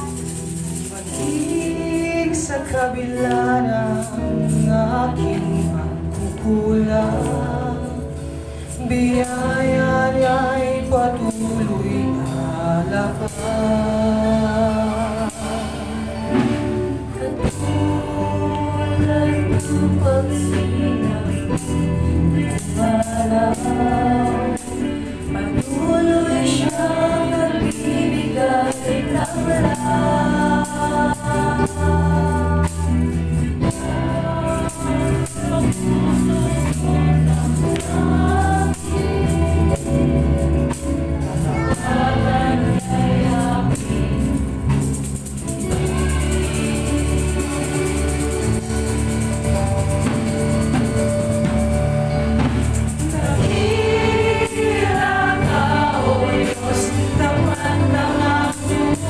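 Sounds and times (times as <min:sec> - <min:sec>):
women singing slow song: 0:00.0 - 0:44.8, 0:53.0 - 0:59.0
musical backing: 0:00.0 - 0:59.0.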